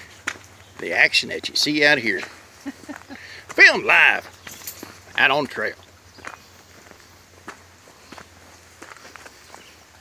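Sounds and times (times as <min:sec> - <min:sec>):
footsteps on dirt trail: 0:00.0 - 0:10.0.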